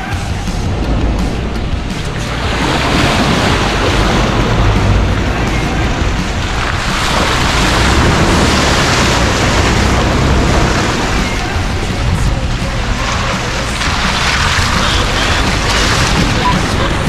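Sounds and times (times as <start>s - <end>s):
low drone: 0.0s - 17.0s
wind rush on microphone: 0.0s - 17.0s.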